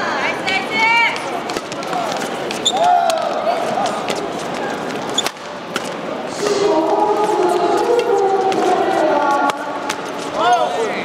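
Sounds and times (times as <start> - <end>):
voices in a hall: 0.0 - 11.0.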